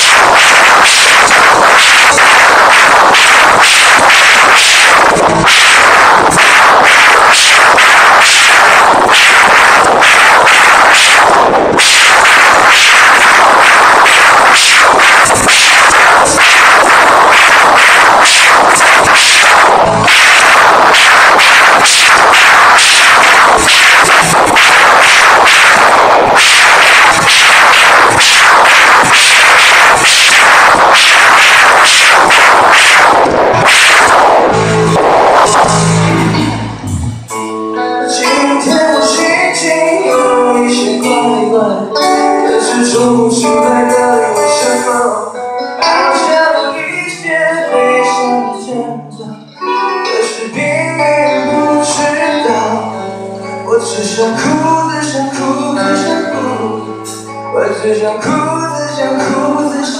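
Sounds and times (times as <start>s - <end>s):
distorted live rock band: 0.0s - 59.9s.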